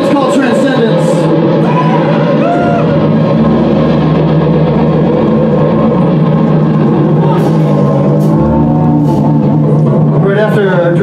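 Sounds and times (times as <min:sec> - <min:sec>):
distorted guitars droning chord: 0:00.0 - 0:11.0.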